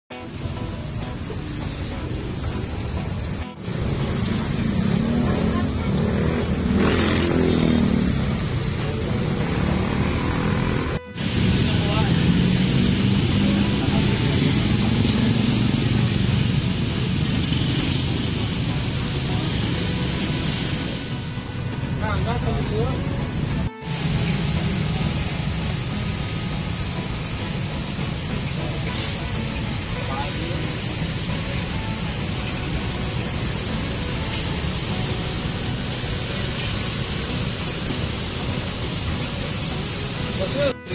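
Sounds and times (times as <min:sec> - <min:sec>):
road traffic: 0:00.1 - 0:40.9
vehicle passing close: 0:01.6 - 0:28.9
people talking: 0:05.0 - 0:08.0, 0:11.6 - 0:16.1, 0:21.9 - 0:23.3, 0:28.4 - 0:31.7, 0:40.3 - 0:40.9.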